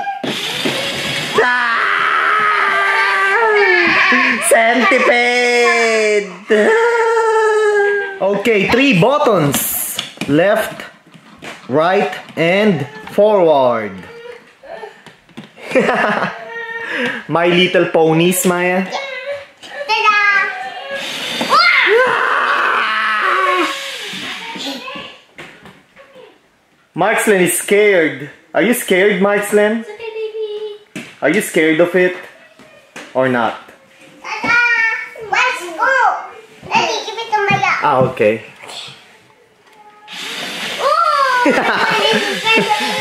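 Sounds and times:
child crying out excitedly: 0:00.0 - 0:08.2, 0:19.0 - 0:25.1, 0:40.1 - 0:43.0
squealing and shrieking voices: 0:00.0 - 0:09.0, 0:12.0 - 0:13.2, 0:18.9 - 0:25.1, 0:39.9 - 0:43.0
toy gear motor whirring: 0:00.2 - 0:01.5, 0:20.9 - 0:21.7, 0:23.6 - 0:24.8, 0:40.1 - 0:43.0
child laughing: 0:03.0 - 0:08.2, 0:15.6 - 0:17.2, 0:40.8 - 0:43.0.

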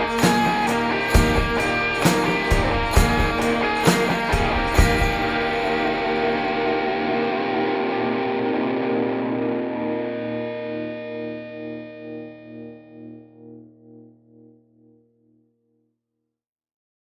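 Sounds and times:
electric guitar chord ringing: 0:00.0 - 0:15.3.

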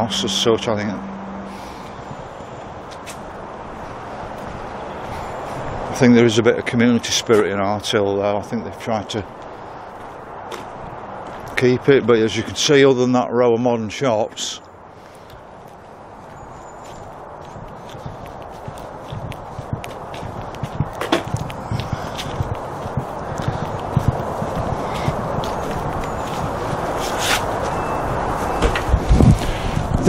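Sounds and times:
footsteps on paved path: 0:01.5 - 0:07.8, 0:08.5 - 0:12.6, 0:14.3 - 0:30.0
rushing noise: 0:14.8 - 0:30.0.

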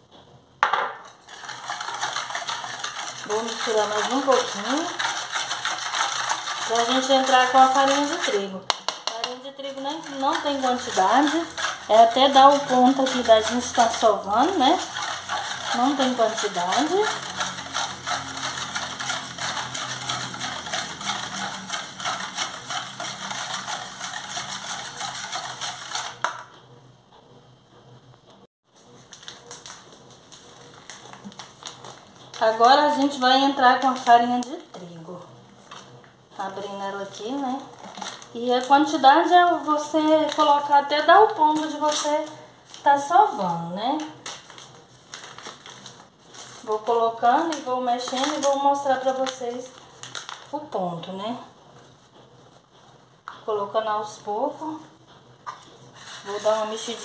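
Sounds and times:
whisk beating in a metal bowl: 0:01.1 - 0:26.6, 0:29.1 - 0:51.3, 0:55.9 - 0:57.0
paper bag crinkling: 0:28.8 - 0:32.7, 0:37.7 - 0:38.7, 0:44.2 - 0:46.7, 0:47.5 - 0:50.6.

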